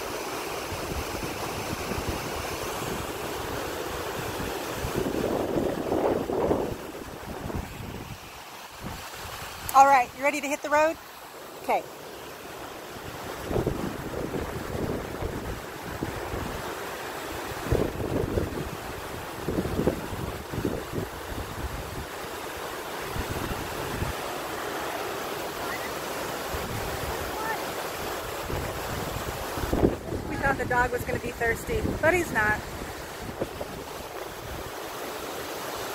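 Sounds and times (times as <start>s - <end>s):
river rushing: 0.0s - 35.9s
wind buffeting microphone: 0.7s - 8.2s, 13.1s - 16.7s, 17.4s - 22.2s, 28.0s - 34.8s.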